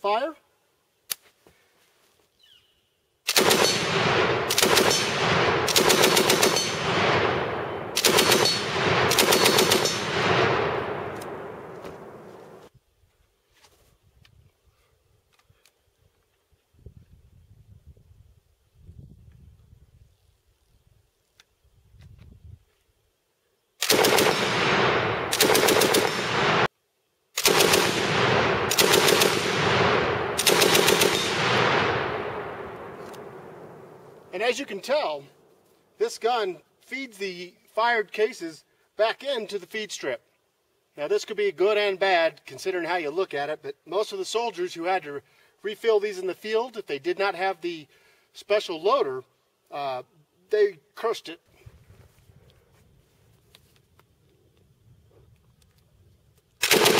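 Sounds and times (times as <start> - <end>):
machine gun automatic fire: 3.3 - 12.2, 23.8 - 26.7, 27.4 - 33.0, 56.6 - 56.9.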